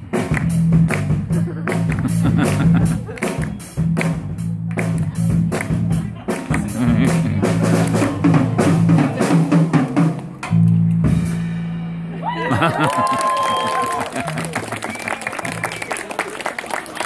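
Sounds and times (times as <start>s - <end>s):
live rock band playing: 0.0s - 12.7s.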